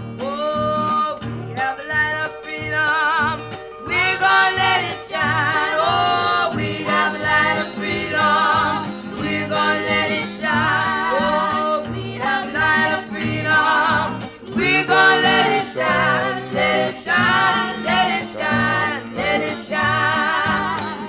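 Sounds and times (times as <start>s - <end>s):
singing voice with vibrato: 0.2s - 21.0s
instrumental accompaniment: 0.9s - 21.0s.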